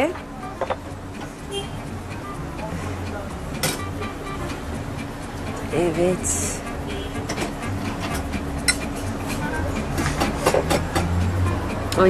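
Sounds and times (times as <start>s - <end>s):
faint background music: 0.0s - 12.0s
utensils and dishes clinking: 2.6s - 4.7s, 7.2s - 12.0s.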